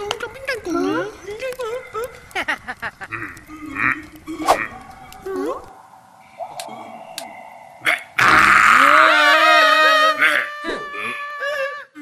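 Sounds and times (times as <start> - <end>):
cartoon gibberish voices: 7.8 - 12.0.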